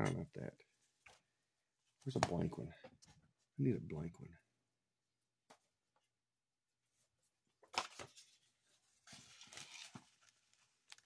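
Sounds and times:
foil wrapper rustling and crinkling: 9.0 - 11.0.

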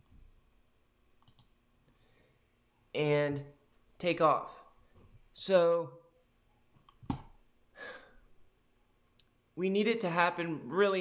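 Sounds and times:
computer mouse clicks: 1.2 - 1.5.

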